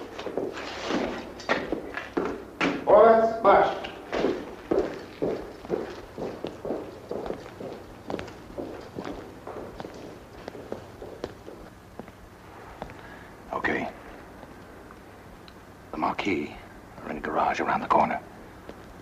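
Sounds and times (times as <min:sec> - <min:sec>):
boots marching in step: 0:00.0 - 0:02.8, 0:03.6 - 0:14.6.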